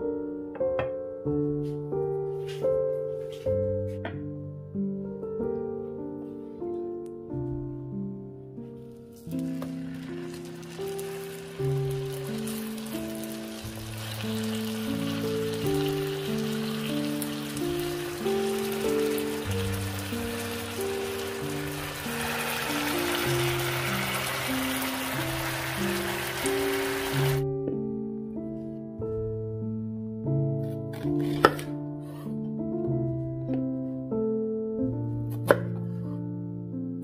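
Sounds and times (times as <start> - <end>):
piano-like background music: 0.0 - 37.0
chicken sizzling in a frying pan: 9.3 - 27.4.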